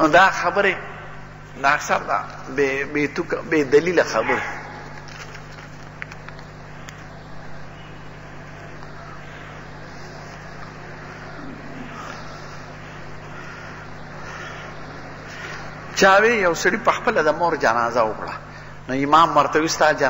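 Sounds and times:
low even hum: 0.0 - 20.0.

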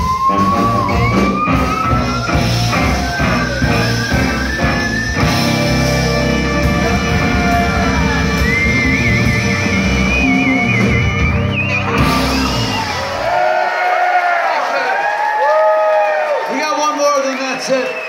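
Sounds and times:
live band playing: 0.0 - 13.8
audience cheering and yelling: 0.0 - 18.0.

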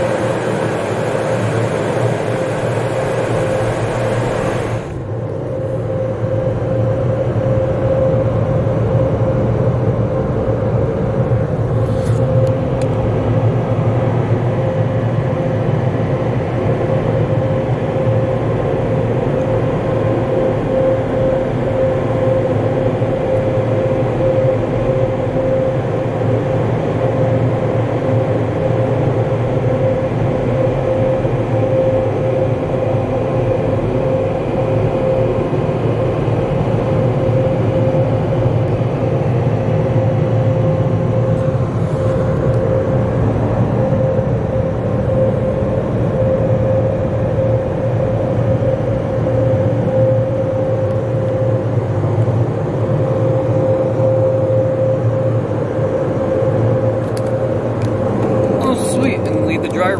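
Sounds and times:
dryer blowers rushing air: 0.0 - 59.9
steady hum: 0.0 - 59.9.

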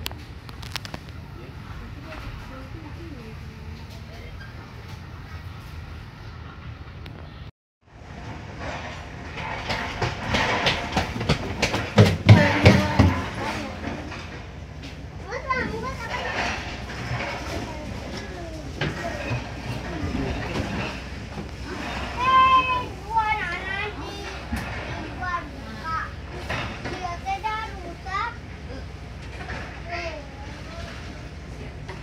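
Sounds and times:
train carriage rumble: 0.0 - 32.0
children's high-pitched voices: 15.2 - 16.6, 17.2 - 19.5, 21.8 - 29.0, 29.8 - 31.2.

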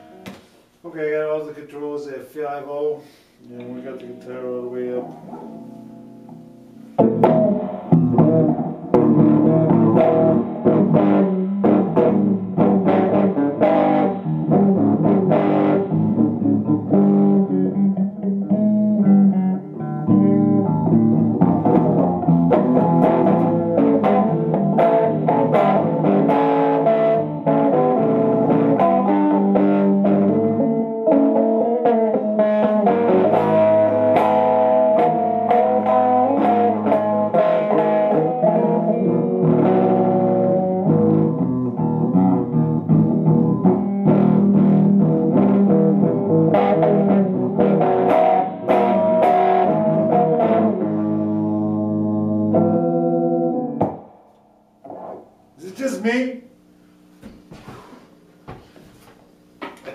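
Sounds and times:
electric guitar playing notes and chords: 3.6 - 55.9.

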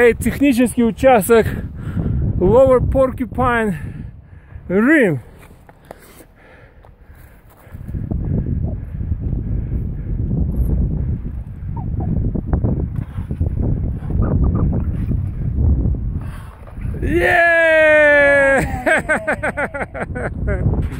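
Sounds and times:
wind buffeting microphone: 0.0 - 5.3, 7.0 - 20.9.

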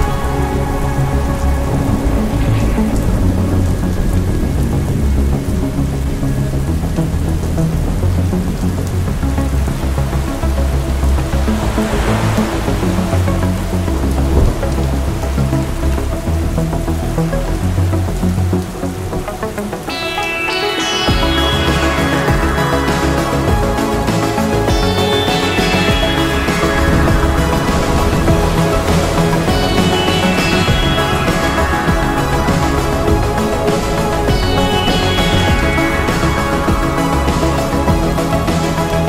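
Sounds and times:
swell of noise: 0.0 - 17.6, 19.2 - 39.0
dark ambient synth music: 0.0 - 39.0
rain: 0.0 - 39.0.

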